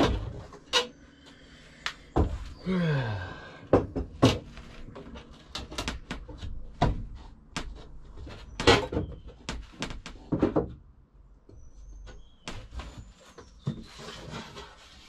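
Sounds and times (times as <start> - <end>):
wooden panel knocks and bumps: 2.1 - 2.6, 3.7 - 10.9.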